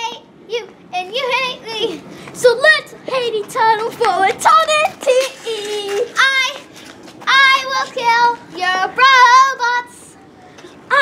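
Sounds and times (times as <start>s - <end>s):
girl singing unaccompanied: 0.0s - 11.0s.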